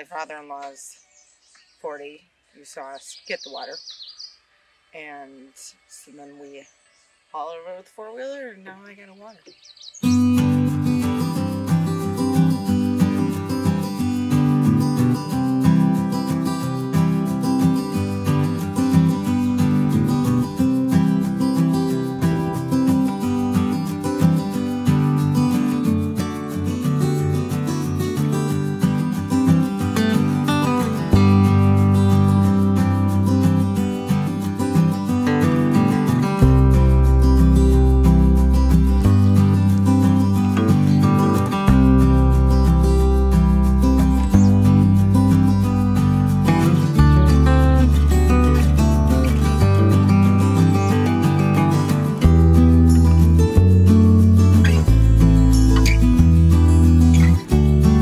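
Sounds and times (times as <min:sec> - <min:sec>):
strummed acoustic guitar music: 0:08.2 - 0:58.0
deep bass notes: 0:10.1 - 0:58.0.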